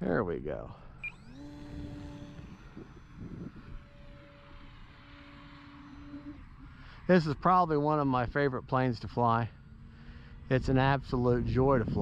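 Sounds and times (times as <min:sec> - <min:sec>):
electric motor and propeller whine: 0:00.0 - 0:12.0.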